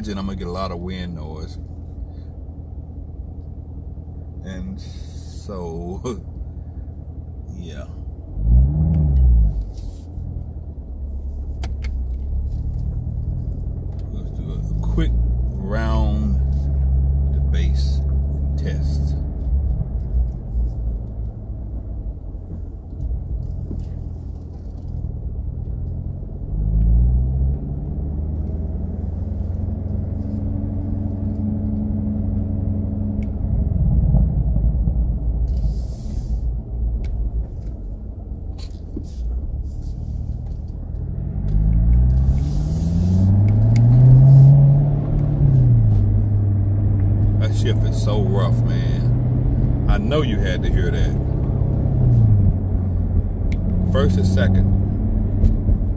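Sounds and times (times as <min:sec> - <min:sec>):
car engine accelerating: 0:02.9 - 0:55.9.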